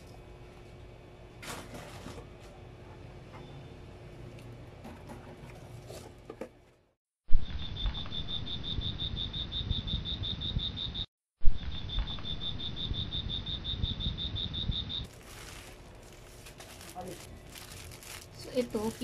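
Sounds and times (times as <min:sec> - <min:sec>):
cricket chirping: 0:07.3 - 0:15.1
plastic bag crinkling: 0:15.1 - 0:19.0.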